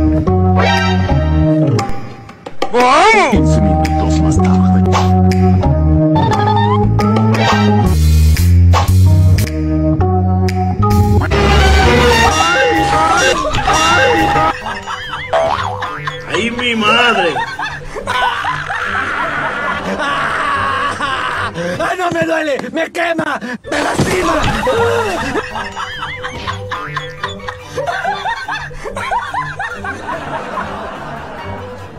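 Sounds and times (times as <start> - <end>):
background music: 0.0 - 31.9
cartoon boing sound effect: 15.3 - 15.8.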